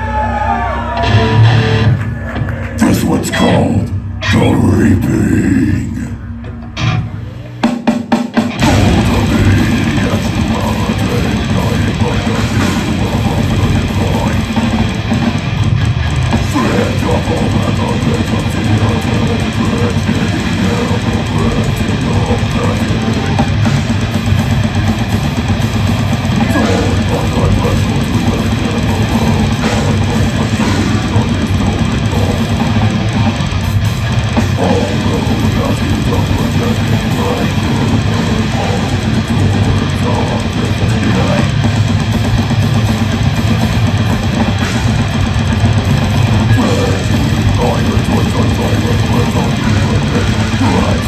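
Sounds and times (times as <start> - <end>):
death metal band playing live: 0.0 - 51.0.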